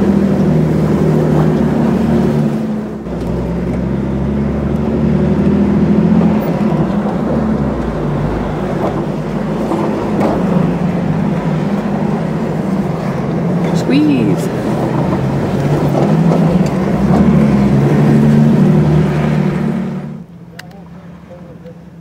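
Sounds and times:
vehicle engine running at low speed: 0.0 - 22.0.

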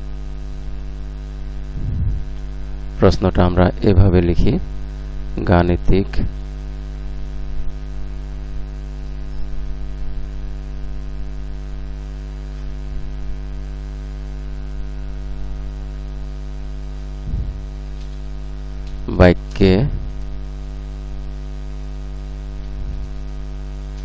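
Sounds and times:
electrical mains hum: 0.0 - 24.0.

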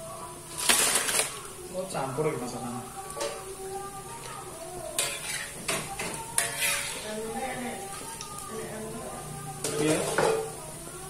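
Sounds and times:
oil sizzling: 0.0 - 11.0
utensils scraping a steel wok: 4.9 - 8.4.

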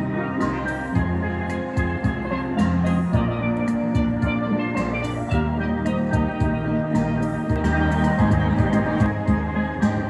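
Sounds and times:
low bass pan notes: 0.0 - 10.0
sharp percussion hits: 0.0 - 10.0
steel pan melody: 0.0 - 10.0.

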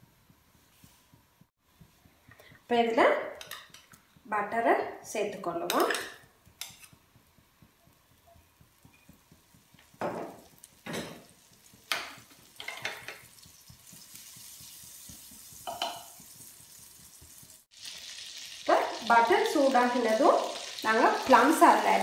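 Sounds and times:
utensils knocking against a pan: 3.3 - 4.2, 5.6 - 16.3
butter sizzling in a frying pan: 6.3 - 22.0.

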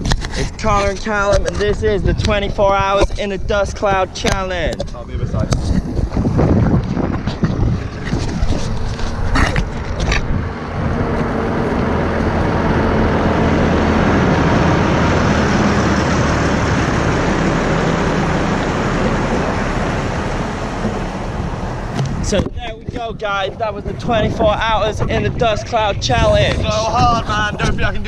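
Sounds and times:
wind on microphone: 0.0 - 16.1, 16.7 - 28.0
lorry diesel engine: 3.9 - 24.8.

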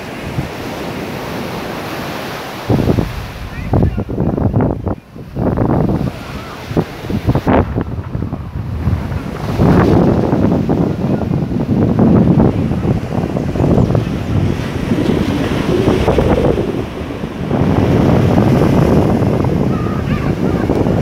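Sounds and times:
steady wind: 0.0 - 21.0
surf washing onto beach: 0.0 - 21.0
wind buffeting microphone: 0.0 - 21.0.

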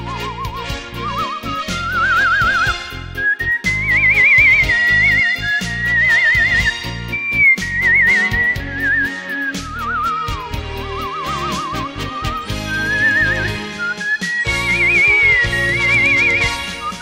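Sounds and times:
instrumental backing with bass: 0.0 - 17.0
person whistling a melody: 0.0 - 17.0.

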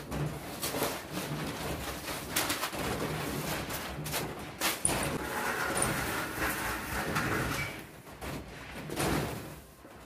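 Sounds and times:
scraper on steel shutter: 3.3 - 8.0.

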